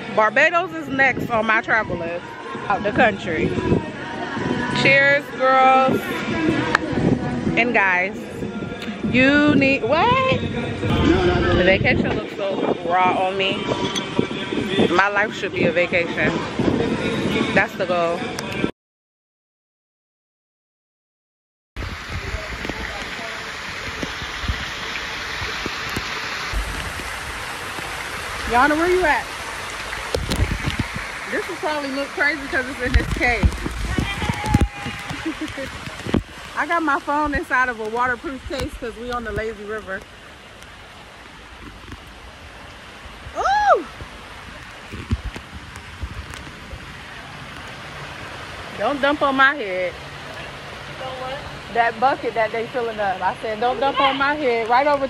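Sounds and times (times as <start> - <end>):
water rushing and splashing: 0.0 - 18.7, 21.8 - 55.0
water pouring in a grotto: 21.8 - 51.7.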